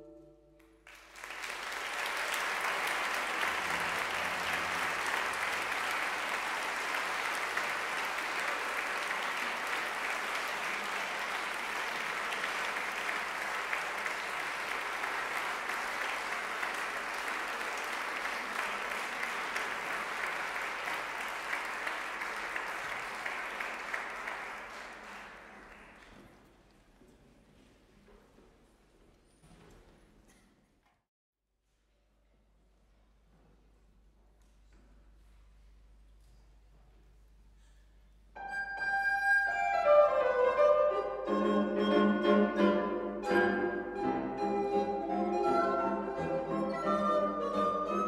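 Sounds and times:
audience applauding: 0.8 - 26.4.

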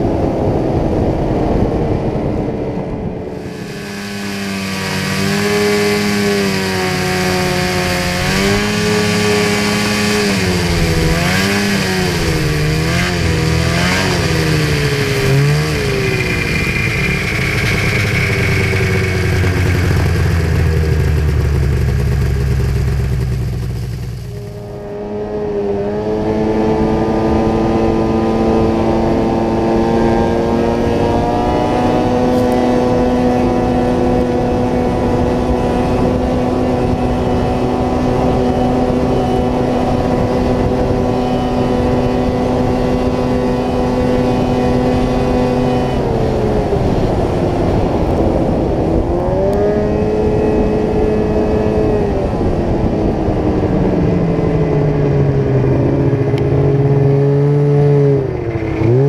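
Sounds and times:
snowmobile engine running hard: 0.0 - 59.0.

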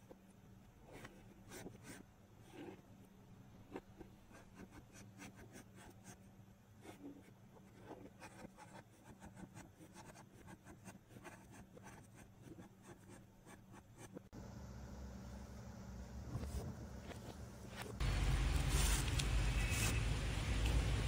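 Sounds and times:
marker scratching on paper: 6.8 - 14.3.

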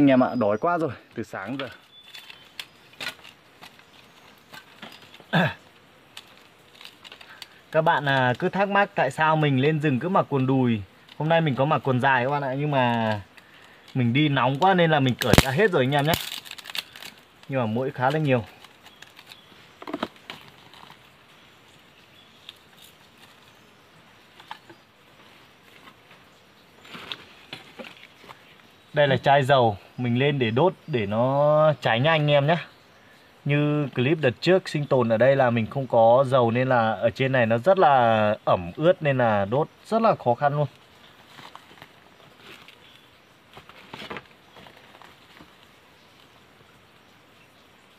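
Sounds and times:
wood kindling knocking and rustling: 1.5 - 5.5, 26.8 - 28.4, 43.5 - 45.6.

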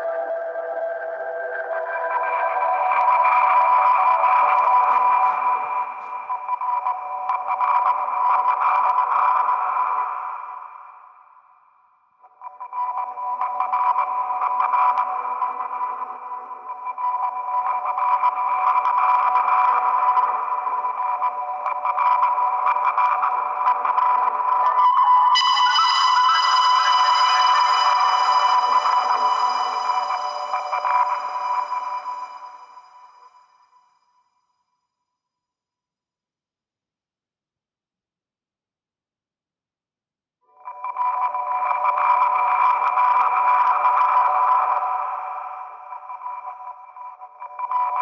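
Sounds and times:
ambient electronic music: 0.0 - 10.7, 12.3 - 33.8.

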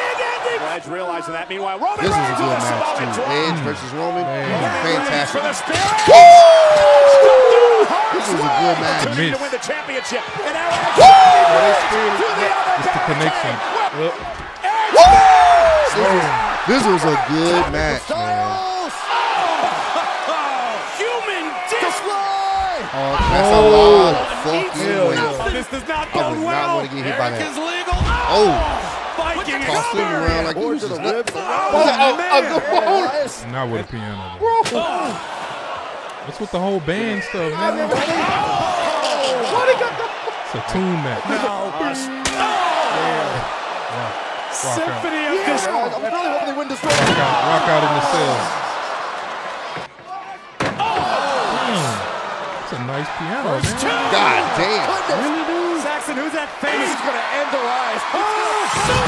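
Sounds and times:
men's voices: 0.0 - 35.4, 36.2 - 48.8, 50.8 - 59.0.

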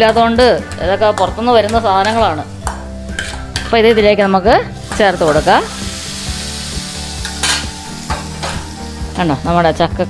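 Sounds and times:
hot oil sizzling: 0.0 - 9.6
spoon scraping pan and bowl: 3.0 - 4.0.

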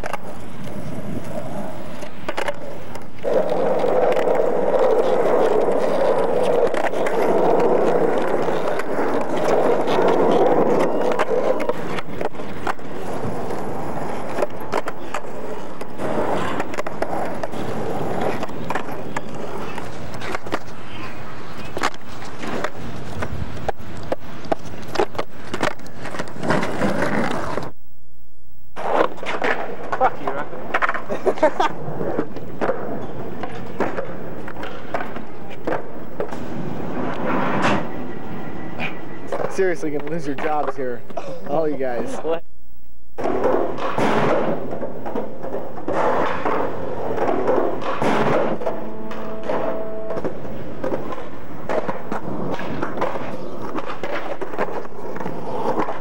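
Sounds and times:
skateboard clacking on pavement: 0.0 - 27.7, 28.8 - 38.0, 43.2 - 56.0
skateboard wheels rolling on asphalt: 0.0 - 27.8, 28.7 - 42.4, 43.2 - 56.0.

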